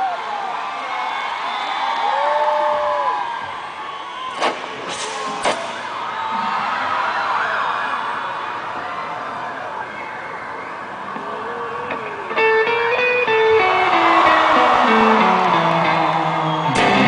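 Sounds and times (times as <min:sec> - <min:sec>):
crowd cheering: 0:00.0 - 0:17.0
whistles and screams: 0:01.2 - 0:08.3, 0:09.3 - 0:11.2, 0:14.2 - 0:17.0.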